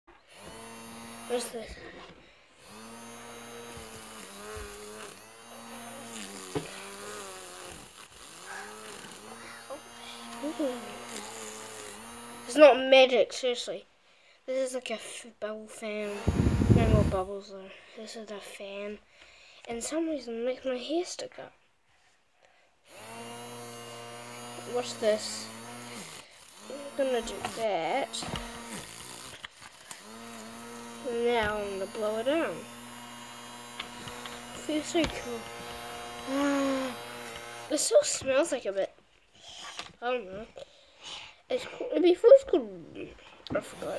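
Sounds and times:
toy fan motor buzzing: 0:00.2 - 0:01.8, 0:02.6 - 0:12.7, 0:15.9 - 0:17.3, 0:22.9 - 0:38.2, 0:43.6 - 0:43.9.

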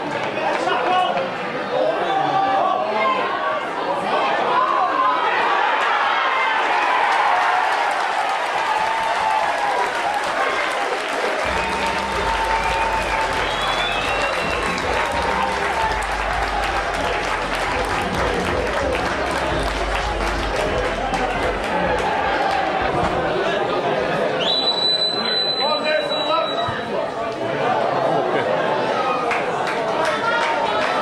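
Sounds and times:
crowd clapping: 0:00.0 - 0:01.4, 0:06.6 - 0:23.4, 0:29.0 - 0:31.0
crowd cheering and shouting: 0:00.0 - 0:31.0.

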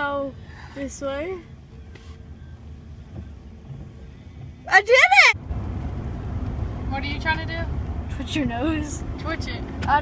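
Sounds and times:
vehicle rumble from inside cabin: 0:00.0 - 0:10.0.

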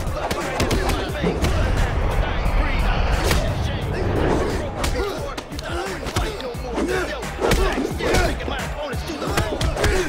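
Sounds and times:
people shouting: 0:00.0 - 0:03.6, 0:04.2 - 0:10.0
driving action music: 0:00.0 - 0:10.0.

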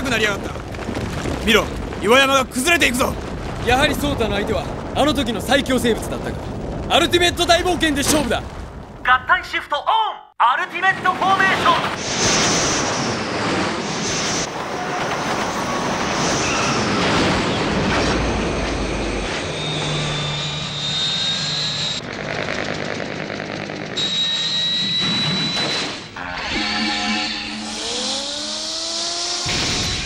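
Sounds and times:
mechanical and electronic noise: 0:17.9 - 0:30.0
electronic tones: 0:24.0 - 0:28.8.

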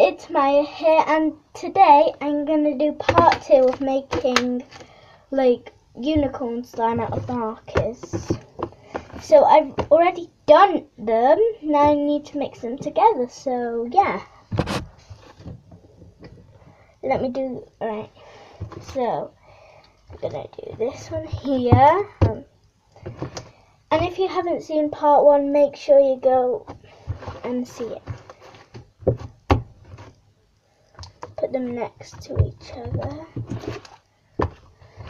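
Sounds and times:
soft rustling: 0:14.0 - 0:16.9, 0:26.4 - 0:35.0.

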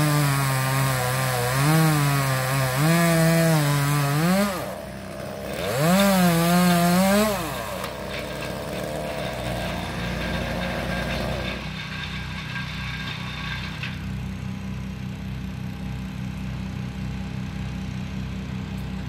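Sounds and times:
chainsaw engine idling: 0:00.0 - 0:19.0.

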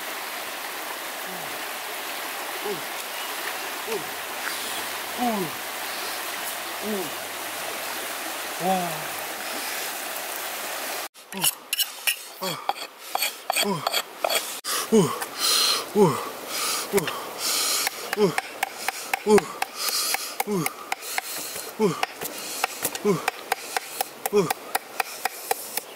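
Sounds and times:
river water flowing: 0:00.0 - 0:25.9
knife scraping axe head: 0:11.4 - 0:14.5.

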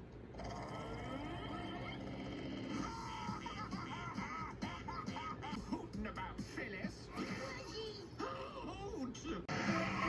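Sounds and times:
high-pitched cartoon voice sounds: 0:02.7 - 0:05.7.

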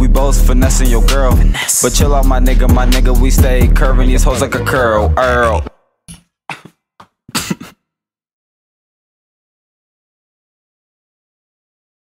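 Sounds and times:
person clearing throat: 0:06.5 - 0:06.7, 0:07.3 - 0:07.8.

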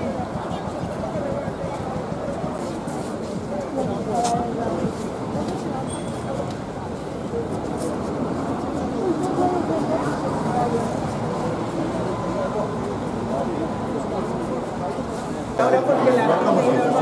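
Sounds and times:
crowd chatter: 0:00.0 - 0:17.0
low rumble of traffic: 0:00.0 - 0:17.0.

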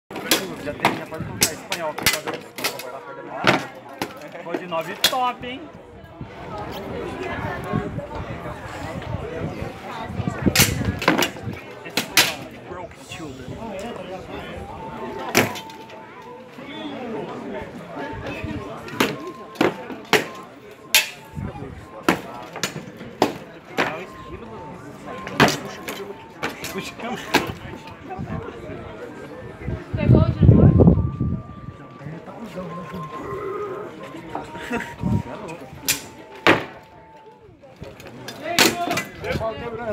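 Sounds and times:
crowd voices: 0:00.0 - 0:39.9.

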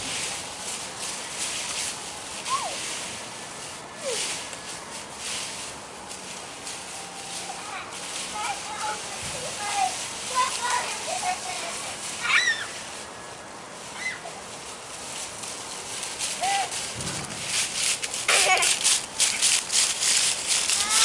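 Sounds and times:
dry leaves rustling and crunching: 0:00.0 - 0:21.0
children squealing: 0:12.2 - 0:12.8, 0:13.9 - 0:14.4.

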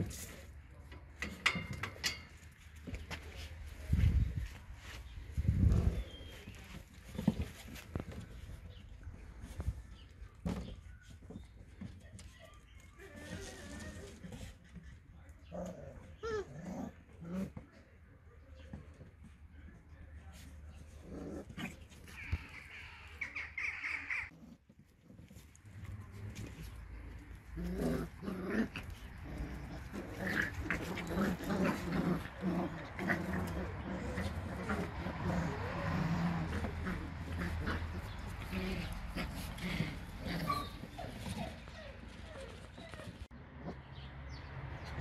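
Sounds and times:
puppies growling: 0:13.2 - 0:17.6, 0:20.8 - 0:44.1
puppies barking: 0:28.0 - 0:43.9.

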